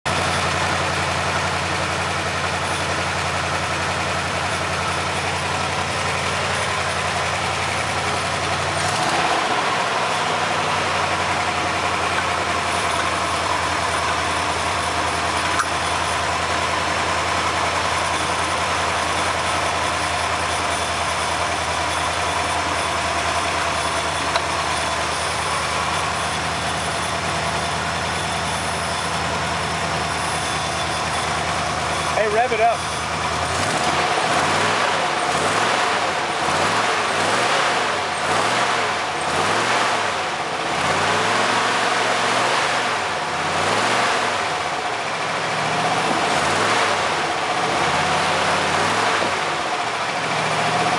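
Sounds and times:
car engine idling: 0.0s - 50.9s.

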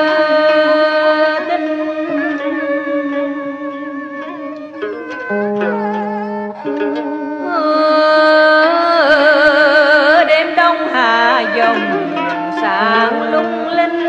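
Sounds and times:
woman singing: 0.0s - 5.4s, 7.4s - 14.0s
long held melodic notes: 0.0s - 14.0s
plucked string notes: 0.0s - 14.0s.

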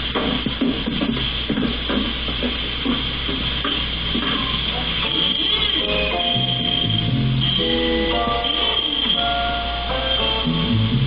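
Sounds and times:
film soundtrack hiss: 0.0s - 11.0s.

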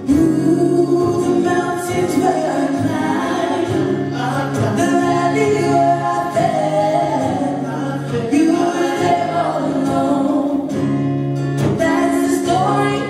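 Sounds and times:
group singing gospel: 0.0s - 13.0s.

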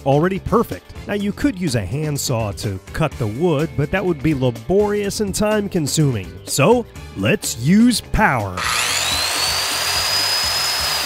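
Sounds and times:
circular saw whining: 8.6s - 11.0s.

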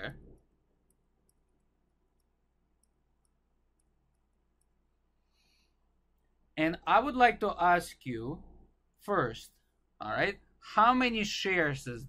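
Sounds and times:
stylus clicking on tablet: 0.2s - 5.0s.

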